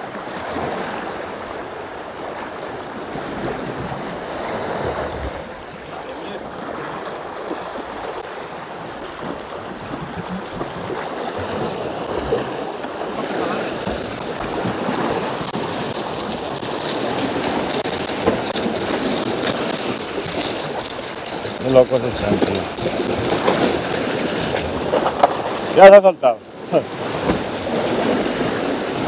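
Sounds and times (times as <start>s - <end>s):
sea water splashing against rocks: 0.0s - 29.0s
fishing reel clicks and rattles: 8.9s - 26.6s.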